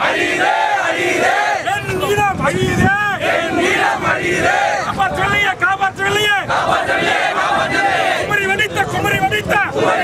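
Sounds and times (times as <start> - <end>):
crowd shouting slogans: 0.0 - 10.0.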